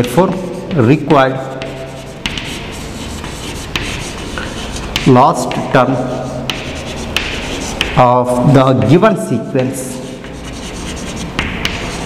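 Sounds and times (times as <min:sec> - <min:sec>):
chalk scratching on chalkboard: 0:00.0 - 0:08.0, 0:09.6 - 0:12.0
chalk tapping on board: 0:00.0 - 0:09.0, 0:09.6 - 0:12.0.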